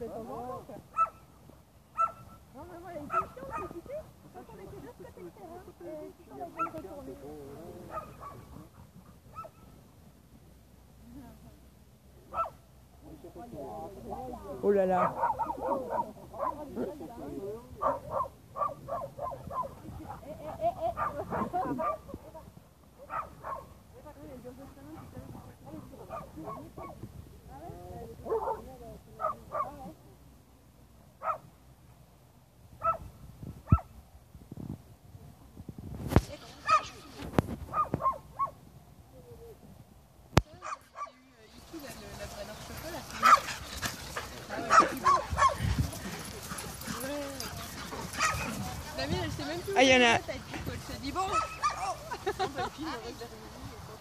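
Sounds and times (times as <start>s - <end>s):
dogs yipping and barking: 0.9s - 1.2s, 2.0s - 2.4s, 3.1s - 3.9s, 9.3s - 9.7s, 12.3s - 12.6s, 14.9s - 16.6s, 17.8s - 20.3s, 23.0s - 23.8s, 31.2s - 31.4s, 32.8s - 33.1s, 37.7s - 38.6s, 42.8s - 49.2s, 51.2s - 52.3s.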